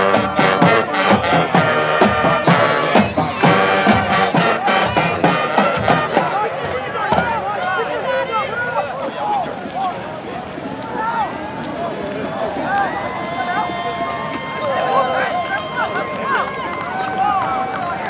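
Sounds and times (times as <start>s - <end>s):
brass band music: 0.0s - 7.5s
crowd shouting and cheering: 0.0s - 18.0s.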